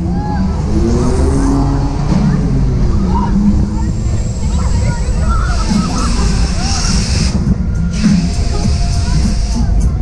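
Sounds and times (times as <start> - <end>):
faint riders' voices: 0.0 - 10.0
wind buffeting microphone: 0.0 - 10.0.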